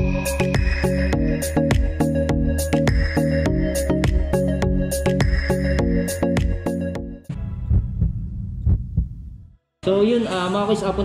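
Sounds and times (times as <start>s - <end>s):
heartbeat thumps: 7.3s - 9.5s.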